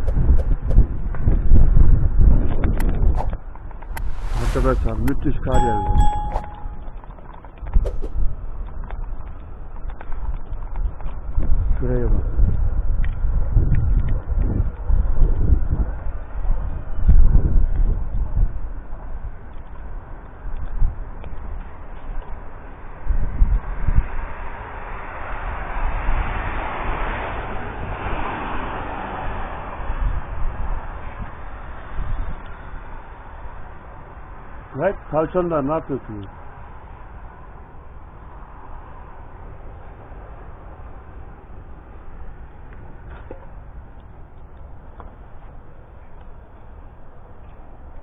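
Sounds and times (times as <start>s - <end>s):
wind rumbling on microphone: 0.0s - 35.1s, 36.1s - 48.0s
broad hiss: 3.9s - 5.2s.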